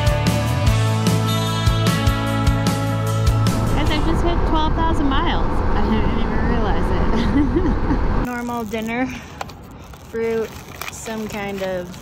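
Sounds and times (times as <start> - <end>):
wind noise: 3.3 - 8.8.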